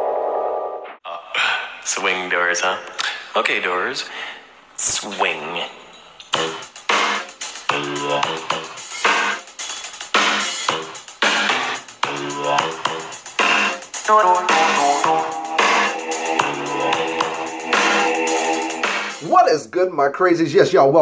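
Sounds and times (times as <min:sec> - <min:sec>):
electronic music with steady beat: 0:06.3 - 0:19.4.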